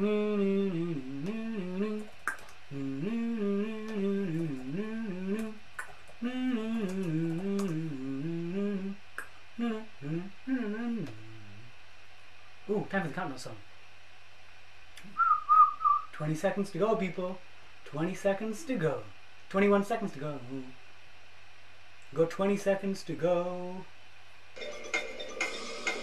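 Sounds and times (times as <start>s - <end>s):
man humming: 0.0s - 9.0s, 9.6s - 11.8s.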